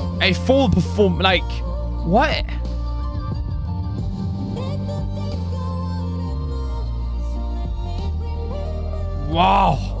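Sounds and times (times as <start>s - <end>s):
slow instrumental backing: 0.0s - 10.0s
woman singing ballad with vibrato: 1.5s - 3.0s, 4.4s - 10.0s.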